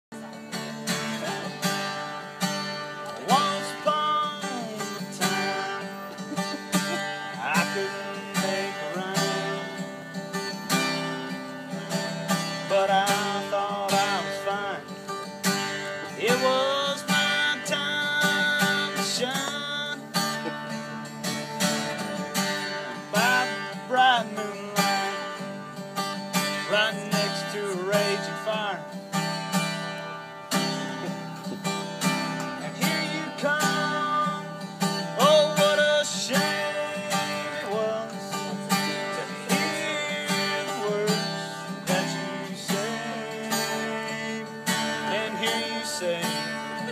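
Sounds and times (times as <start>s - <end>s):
acoustic guitar strumming: 0.1s - 46.9s
man singing: 2.9s - 11.1s, 11.9s - 20.5s, 21.6s - 25.8s, 26.4s - 29.0s, 32.1s - 46.9s.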